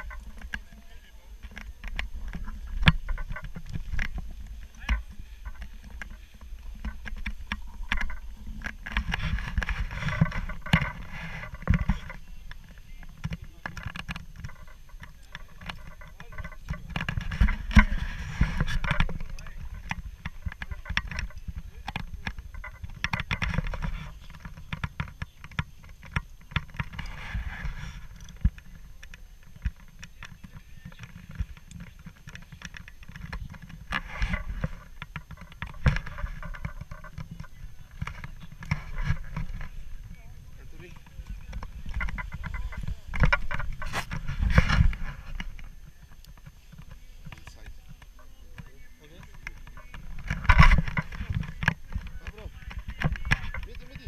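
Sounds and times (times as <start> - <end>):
faint voices: 0.0 - 54.0.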